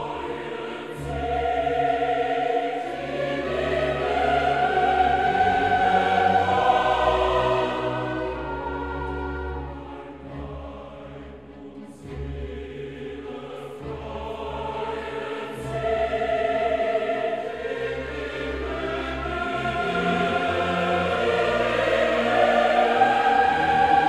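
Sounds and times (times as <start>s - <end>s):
choir singing sustained chords: 0.0s - 24.0s.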